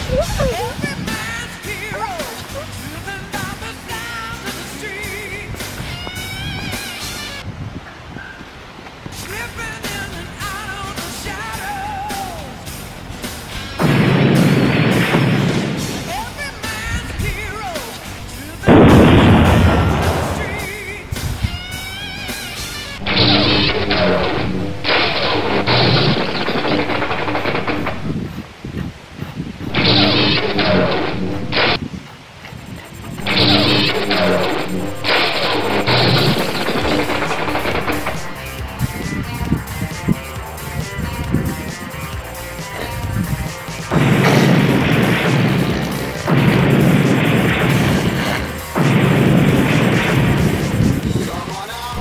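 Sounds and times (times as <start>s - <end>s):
loud blast effects: 12.2s - 21.5s, 23.0s - 28.2s, 29.7s - 31.8s, 33.1s - 39.0s, 42.7s - 52.0s
music with steady beat: 33.2s - 52.0s.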